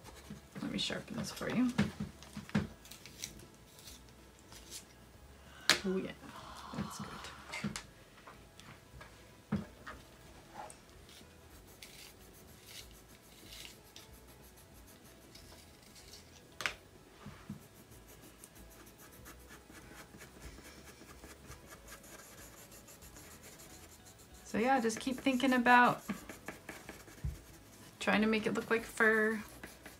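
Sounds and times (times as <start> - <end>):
colored pencils scratching on paper: 10.5 - 16.4, 17.5 - 29.9.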